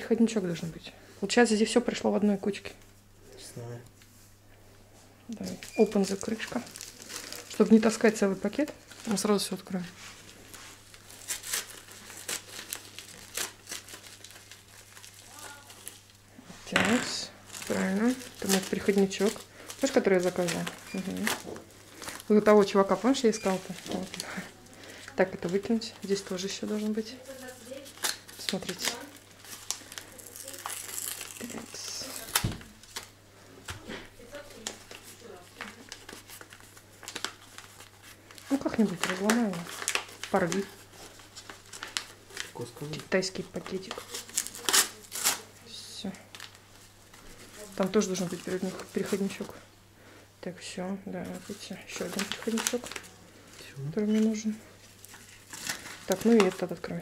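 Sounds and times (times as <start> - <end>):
plastic packets crinkling: 5.4 - 16.2, 17.0 - 33.2, 34.3 - 49.6, 51.2 - 57.0.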